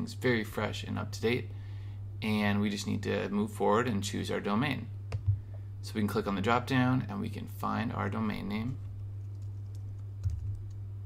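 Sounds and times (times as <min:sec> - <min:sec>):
low electrical hum: 0:00.0 - 0:11.0
keyboard and mouse clicks: 0:09.2 - 0:10.8.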